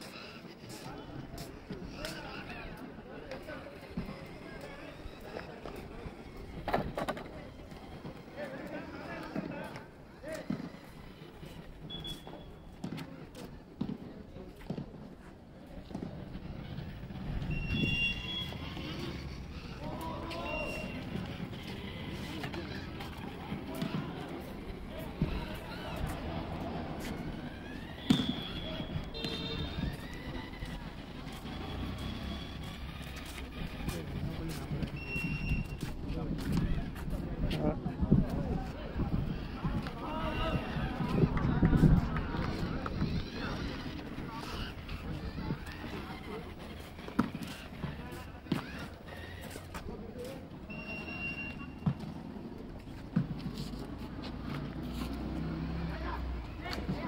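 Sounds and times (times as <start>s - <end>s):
indistinct voices: 0.0s - 57.0s
people talking: 0.0s - 57.0s.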